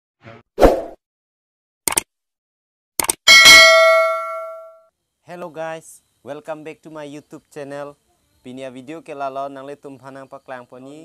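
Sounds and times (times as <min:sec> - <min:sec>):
quick double clicks: 0:01.9 - 0:02.1, 0:03.0 - 0:03.2
bell-like notification ding: 0:03.3 - 0:04.8.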